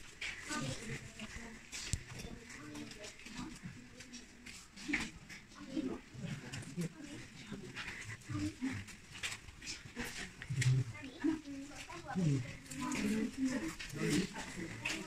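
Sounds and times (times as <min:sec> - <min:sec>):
people talking indistinctly: 0:00.2 - 0:15.0.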